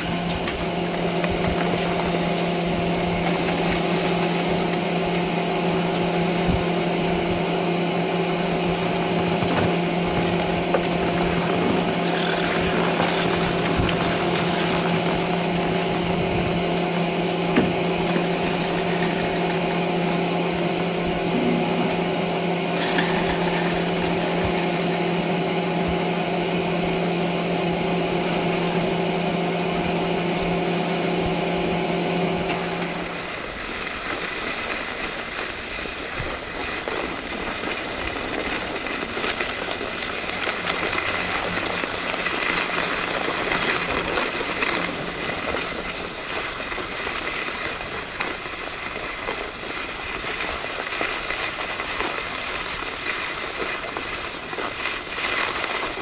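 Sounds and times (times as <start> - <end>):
lift machinery humming: 0.0 - 33.4.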